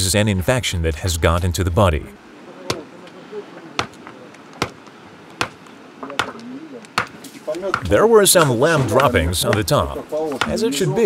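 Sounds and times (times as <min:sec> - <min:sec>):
tool striking stony ground: 0:03.8 - 0:06.4, 0:07.0 - 0:10.6.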